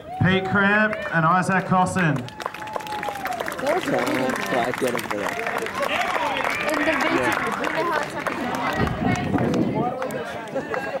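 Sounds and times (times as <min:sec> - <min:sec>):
people chattering: 0:02.7 - 0:11.0.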